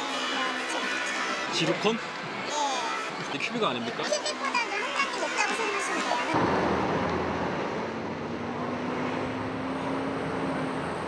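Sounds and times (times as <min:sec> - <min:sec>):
passing cars hum: 0:04.8 - 0:11.0.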